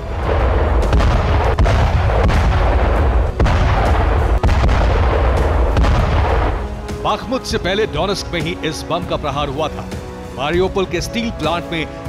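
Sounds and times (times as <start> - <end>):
sharp blast cracks: 0.0 - 7.0
heavy explosion rumble: 0.0 - 8.2.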